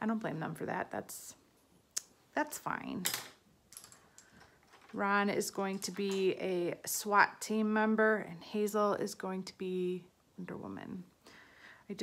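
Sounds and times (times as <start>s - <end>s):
small objects clicking and tapping: 3.0s - 5.0s.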